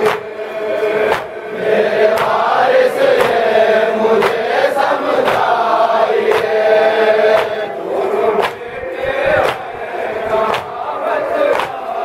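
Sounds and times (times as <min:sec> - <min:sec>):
hands beating on chests: 0:00.0 - 0:00.4, 0:01.0 - 0:01.4, 0:02.1 - 0:02.5, 0:03.1 - 0:03.5, 0:04.2 - 0:04.5, 0:05.2 - 0:05.5, 0:06.2 - 0:06.6, 0:07.3 - 0:07.6, 0:08.4 - 0:08.7, 0:09.4 - 0:09.8, 0:10.4 - 0:10.9, 0:11.5 - 0:11.9
men chanting in unison: 0:00.0 - 0:12.0.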